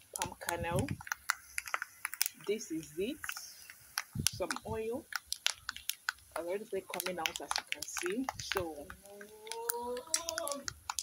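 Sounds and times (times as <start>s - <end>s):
kernels crackling in frying pot: 0.0s - 11.0s
drawn-out vocal hesitation: 8.8s - 10.9s.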